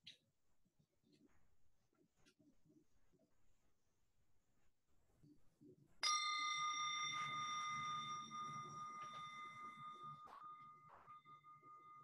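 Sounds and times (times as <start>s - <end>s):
metal bell ringing: 6.0s - 12.0s.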